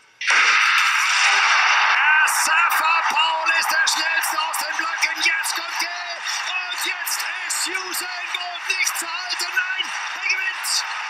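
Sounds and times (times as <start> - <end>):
stadium crowd cheering: 0.2 - 11.0.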